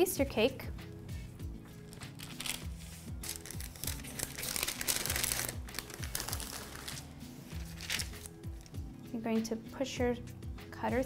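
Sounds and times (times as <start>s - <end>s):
background music with steady beat: 0.0s - 11.0s
paper crinkling and rustling: 1.8s - 8.3s.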